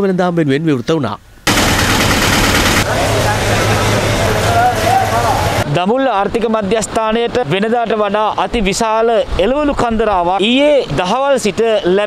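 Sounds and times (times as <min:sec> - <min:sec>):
vehicle engine running: 0:01.5 - 0:05.6
loud wash of noise: 0:01.5 - 0:05.7.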